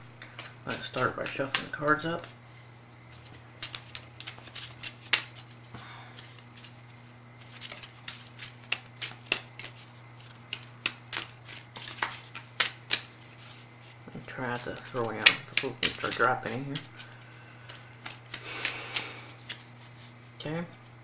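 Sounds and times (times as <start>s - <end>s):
steady low hum: 0.0s - 21.0s
playing cards being shuffled: 0.2s - 2.4s, 3.1s - 20.3s.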